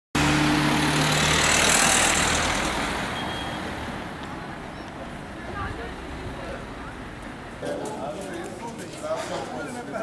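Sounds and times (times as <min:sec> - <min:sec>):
car passing by: 0:00.2 - 0:04.5.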